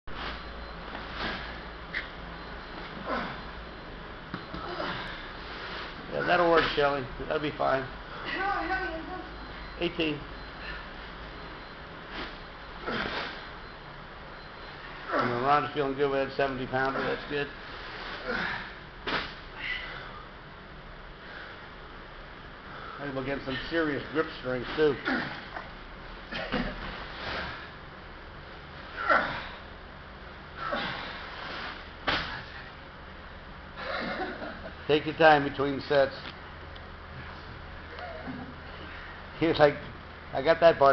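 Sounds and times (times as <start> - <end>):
man breathing heavily: 4.6 - 6.2, 10.5 - 11.2, 21.2 - 21.8.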